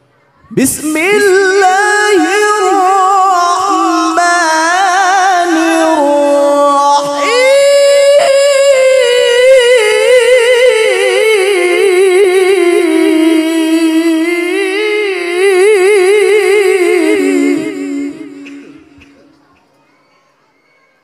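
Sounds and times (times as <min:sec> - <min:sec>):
man reciting melodically: 0:00.5 - 0:19.7.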